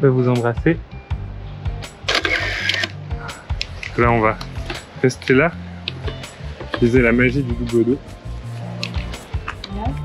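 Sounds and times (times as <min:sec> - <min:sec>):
background music: 0:00.0 - 0:10.0
camera shutter click: 0:02.1 - 0:03.0
film advance whirr: 0:02.1 - 0:03.0.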